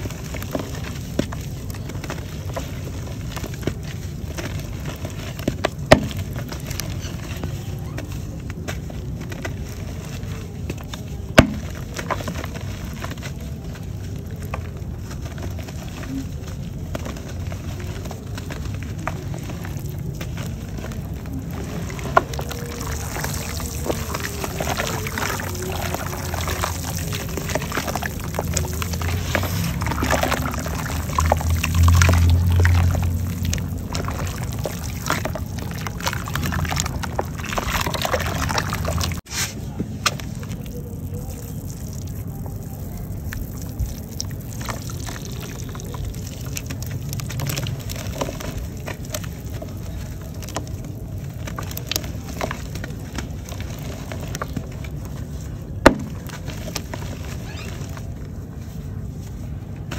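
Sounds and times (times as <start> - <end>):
dry clay crumbling into water: 0.0 - 59.9
wet clay squelching and sloshing: 0.0 - 59.9.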